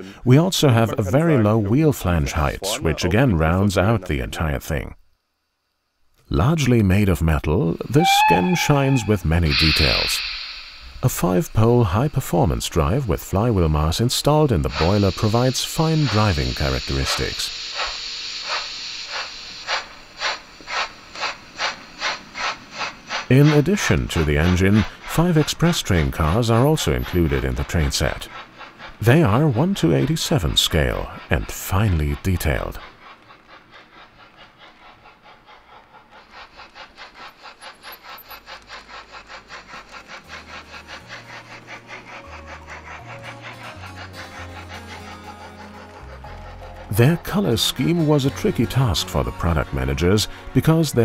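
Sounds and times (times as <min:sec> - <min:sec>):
steady hiss: 0:00.0 - 0:51.0
steam locomotive exhaust chuffs: 0:06.4 - 0:51.0.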